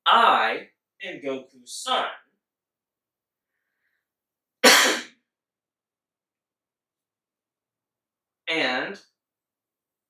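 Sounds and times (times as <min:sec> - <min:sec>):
man coughing: 0:04.6 - 0:05.1.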